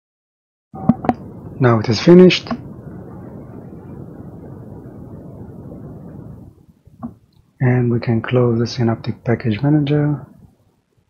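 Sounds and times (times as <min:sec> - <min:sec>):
low-pitched background noise: 0:00.7 - 0:11.0.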